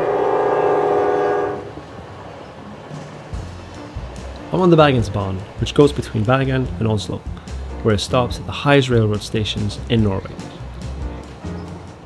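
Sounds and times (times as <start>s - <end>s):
train horn: 0.0s - 1.8s
train rumbling on rails: 0.0s - 12.0s.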